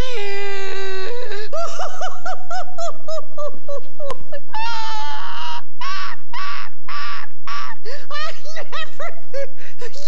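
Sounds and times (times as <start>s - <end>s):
cartoon character laughing: 1.5s - 10.0s.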